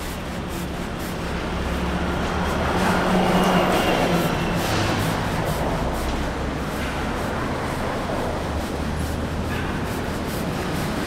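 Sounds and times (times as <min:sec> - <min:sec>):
cars driving past: 0:00.0 - 0:11.0.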